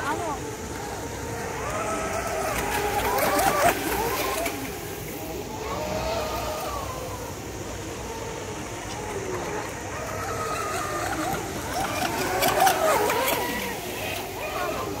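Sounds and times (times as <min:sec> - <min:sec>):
model speedboat motors whining: 0:00.0 - 0:15.0.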